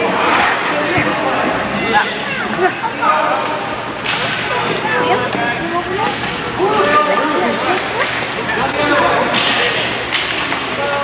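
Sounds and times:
children chattering and calling: 0.8 - 3.6.

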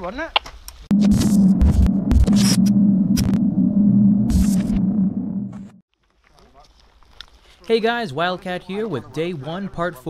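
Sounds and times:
loud electronic hum: 0.9 - 5.8.

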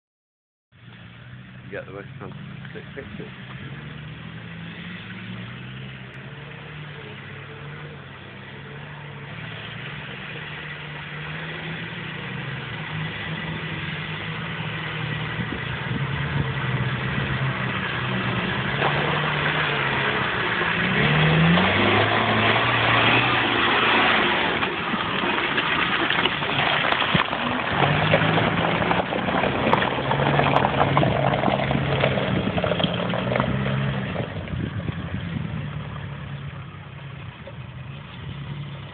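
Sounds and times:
off-road vehicle engine revving: 1.1 - 38.9.

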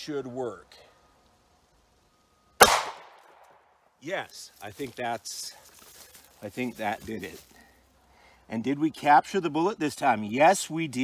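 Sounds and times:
pistol shot with echo: 2.6 - 3.5.

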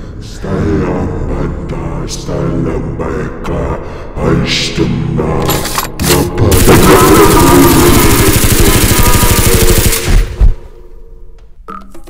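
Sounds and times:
automatic gunfire: 6.5 - 10.4.

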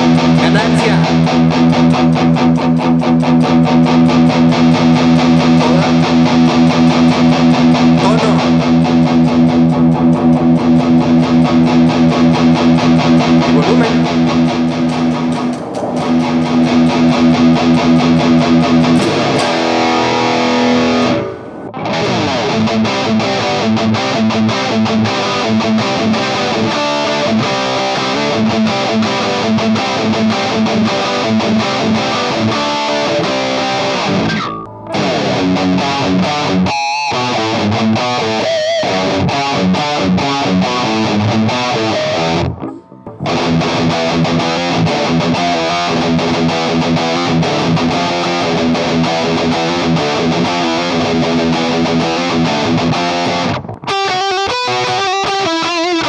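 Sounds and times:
distorted electric guitar riffs: 0.0 - 56.0.

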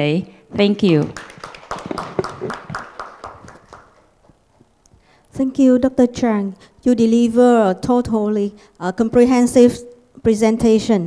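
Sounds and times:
scattered applause: 1.0 - 4.2.

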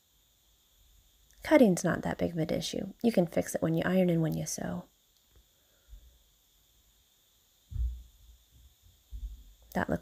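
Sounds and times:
soft knock: 7.7 - 8.1.

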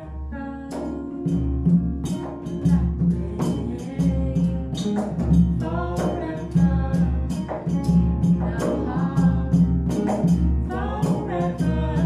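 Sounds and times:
woman singing: 0.0 - 1.6, 2.3 - 12.0
acoustic guitar: 0.0 - 12.0
frame drum beating: 0.8 - 12.0
deep drum beating: 1.3 - 12.0.

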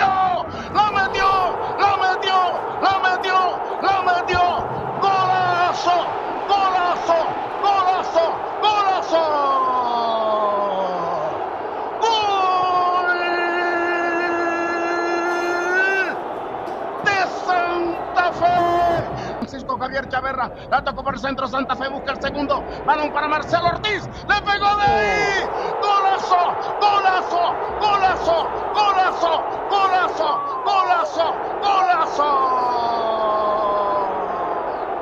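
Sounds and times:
commentator calling excitedly: 0.0 - 16.2, 17.0 - 34.3
stadium crowd noise: 0.0 - 35.0
long held goal shout: 24.8 - 34.8.

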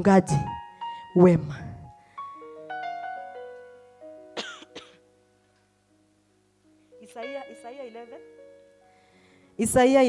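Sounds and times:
short coughs: 4.4 - 5.0
keyboard soft held notes: 6.7 - 9.8.

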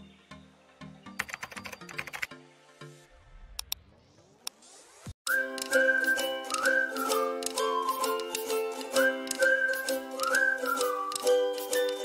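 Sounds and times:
keyboard typing clicks: 1.2 - 2.3
jingle musical notes: 5.3 - 12.0.

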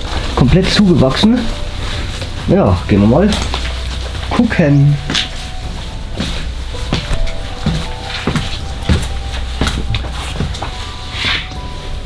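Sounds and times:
quiet background music: 0.0 - 12.0
footsteps on concrete: 3.3 - 11.6.

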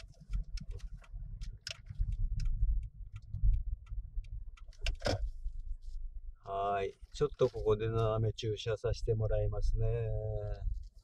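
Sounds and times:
small irregular clicks: 0.0 - 8.8, 9.8 - 11.0
car driving rumble from inside: 0.0 - 11.0.

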